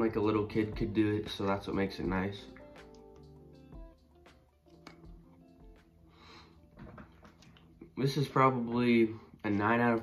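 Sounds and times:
faint music of held notes: 0.0 - 10.0.

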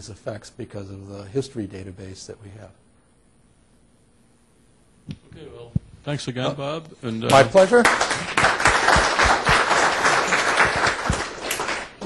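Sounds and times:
audience applauding: 7.4 - 12.0.

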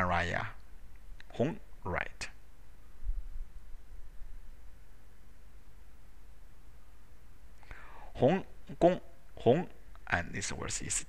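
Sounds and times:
low steady hiss: 0.0 - 11.0
person speaking: 1.2 - 2.4, 8.1 - 11.0.

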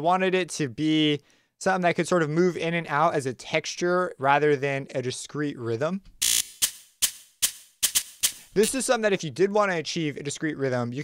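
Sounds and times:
glitchy distorted hi-hat hits: 6.2 - 8.8.

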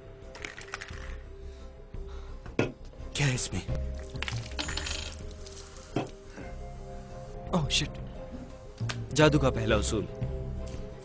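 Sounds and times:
background film music: 0.0 - 11.0
metal clinking and rattling: 0.4 - 1.2, 4.0 - 6.2.

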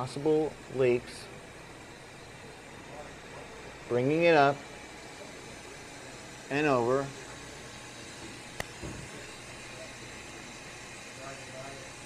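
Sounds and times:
machinery hum and hiss: 0.0 - 12.0
soft knock: 8.8 - 9.1.

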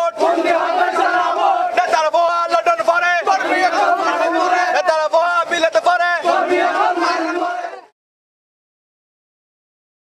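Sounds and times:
men chanting slogans in unison: 0.0 - 7.9.

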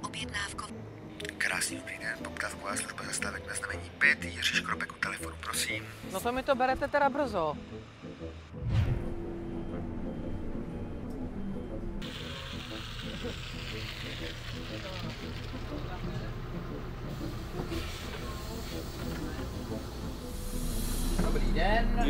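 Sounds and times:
background music: 0.0 - 22.0
bus engine running: 2.4 - 22.0
bus hiss: 12.0 - 22.0.

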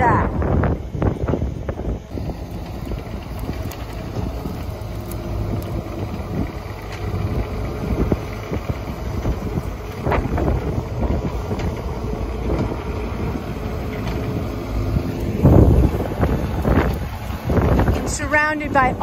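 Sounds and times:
excavator diesel engine running: 0.0 - 19.0.

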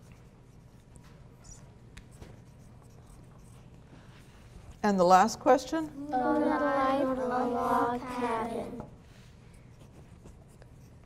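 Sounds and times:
pencils scratching on paper: 0.0 - 3.8, 6.2 - 11.0.

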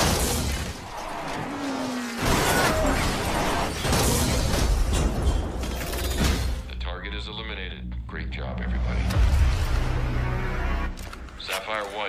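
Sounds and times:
action film music: 0.0 - 12.0.

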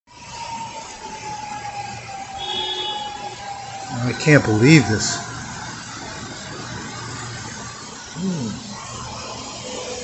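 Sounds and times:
rain and flowing floodwater: 0.1 - 10.0.

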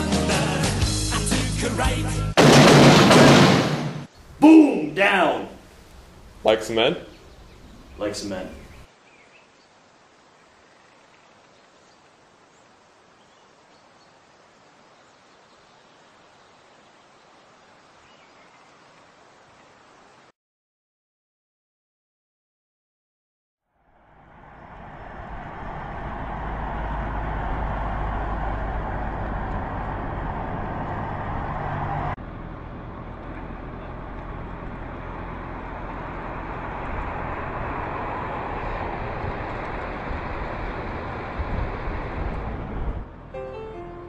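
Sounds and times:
truck engine and tyre noise: 23.8 - 44.0.

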